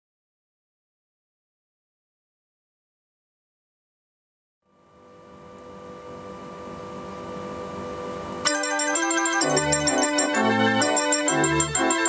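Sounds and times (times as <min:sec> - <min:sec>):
street organ playing: 0:08.5 - 0:12.0.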